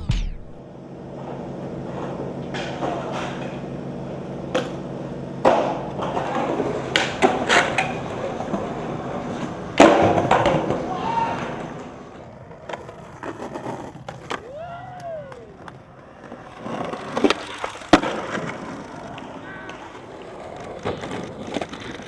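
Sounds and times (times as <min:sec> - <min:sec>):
skateboard wheels rolling: 0:00.6 - 0:22.0
skateboard clacking on ground: 0:01.0 - 0:22.0.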